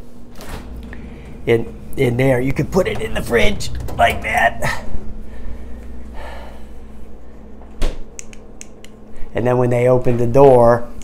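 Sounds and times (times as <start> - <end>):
low steady hum: 0.0 - 11.0
refrigerator door thump: 7.8 - 8.1.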